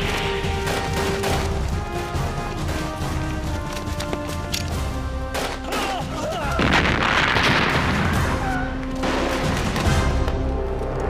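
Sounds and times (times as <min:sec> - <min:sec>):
dramatic background music: 0:00.0 - 0:11.0
gunfire shots: 0:00.5 - 0:01.6.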